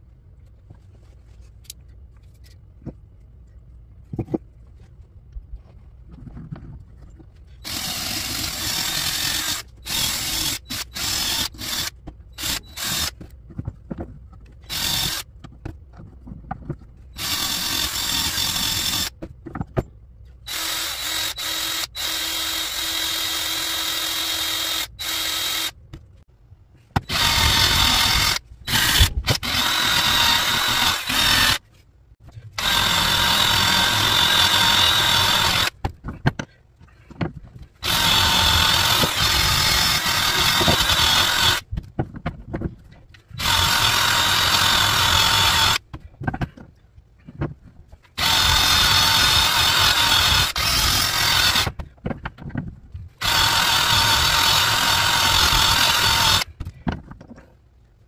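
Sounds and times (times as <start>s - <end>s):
drill with wire brush scrubbing: 7.5s - 13.3s, 14.6s - 15.3s, 17.0s - 19.2s, 20.5s - 25.8s, 27.0s - 31.7s, 32.5s - 35.8s, 37.8s - 41.6s, 43.3s - 45.8s, 48.2s - 51.8s, 53.2s - 56.5s.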